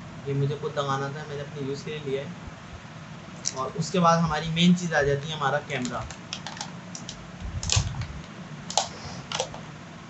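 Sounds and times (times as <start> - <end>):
packaging clicks and rustles: 5.8 - 9.6.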